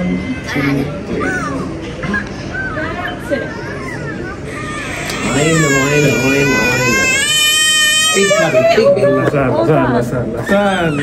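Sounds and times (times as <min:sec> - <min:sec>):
toddler crying: 0:02.6 - 0:09.0.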